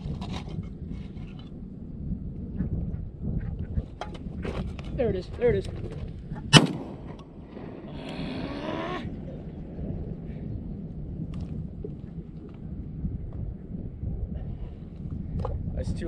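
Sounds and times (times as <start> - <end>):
wind rumbling on microphone: 0.0 - 16.0
rising hissing sound: 7.1 - 9.4.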